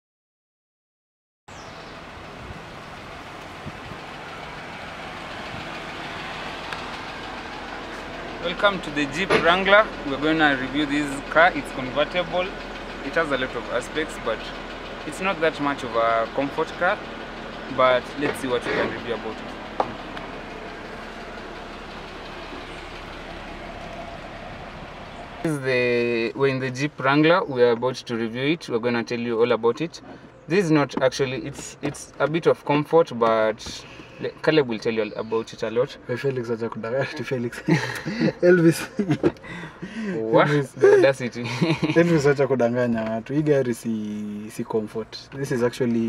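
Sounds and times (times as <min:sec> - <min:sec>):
car engine running: 0:01.5 - 0:28.3, 0:29.9 - 0:46.0.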